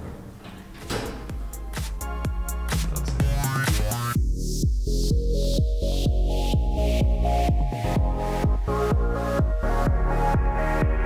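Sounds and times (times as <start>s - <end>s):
elevator doors sliding shut: 0.0s - 2.1s
electronic dance music: 1.3s - 11.0s.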